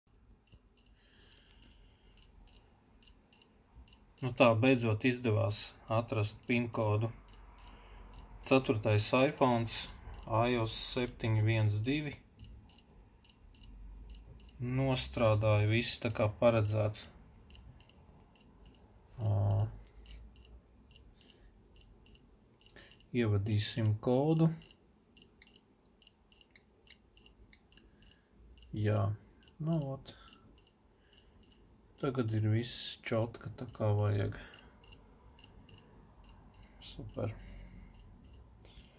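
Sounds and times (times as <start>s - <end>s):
high-pitched electronic beeps: 5.9s - 14.6s, 33.7s - 38.9s.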